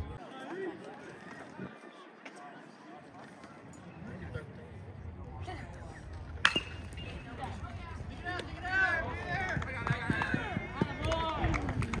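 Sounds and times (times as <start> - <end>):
metal bat hitting ball: 6.4 - 7.1
people shouting and cheering: 8.2 - 12.0.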